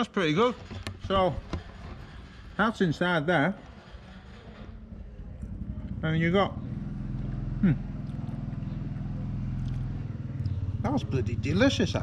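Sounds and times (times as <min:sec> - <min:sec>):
small engine humming: 0:05.3 - 0:12.0.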